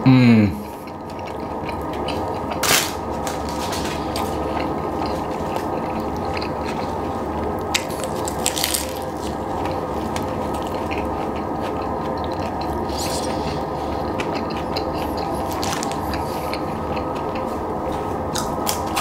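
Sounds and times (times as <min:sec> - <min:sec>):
chewing with wet clicks: 0:00.6 - 0:03.1, 0:04.1 - 0:19.0
person biting a burger: 0:07.7 - 0:17.5.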